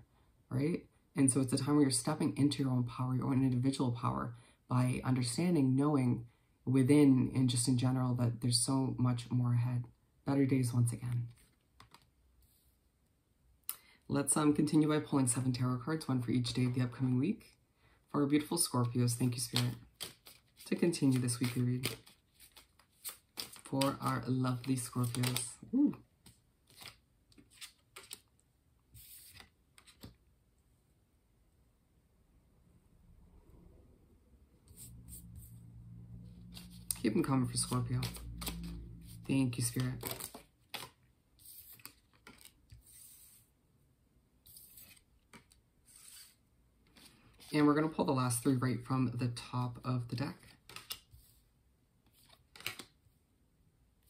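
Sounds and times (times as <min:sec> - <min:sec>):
cards being shuffled by hand: 0:11.2 - 0:12.2, 0:18.8 - 0:30.2, 0:36.3 - 0:43.5, 0:44.4 - 0:47.7, 0:50.4 - 0:51.4, 0:52.0 - 0:53.0
cards rustling: 0:11.3 - 0:12.1, 0:18.6 - 0:30.2, 0:36.3 - 0:43.5, 0:44.4 - 0:47.7, 0:50.4 - 0:51.4, 0:52.1 - 0:53.0
card sliding off deck: 0:28.9 - 0:30.1, 0:44.4 - 0:47.5.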